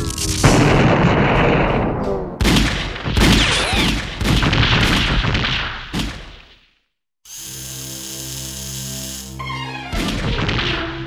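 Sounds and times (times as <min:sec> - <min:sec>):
cartoon crashing and bangs: 0:00.4 - 0:06.5, 0:09.9 - 0:11.0.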